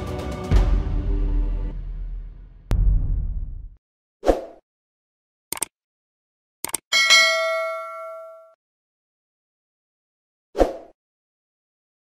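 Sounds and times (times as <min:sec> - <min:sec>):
notification bell chime: 0:07.0 - 0:08.6.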